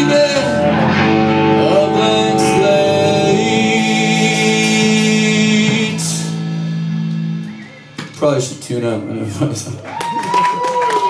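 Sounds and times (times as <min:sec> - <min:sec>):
electric guitar chord ringing: 0:00.0 - 0:08.2.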